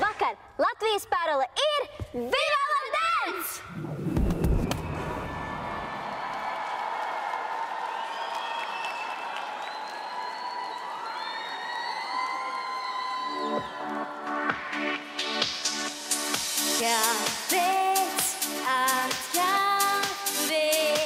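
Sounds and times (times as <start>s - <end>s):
arena crowd cheering and screaming: 4.2s - 15.0s
music: 12.2s - 21.0s
pop song beat: 14.2s - 21.0s.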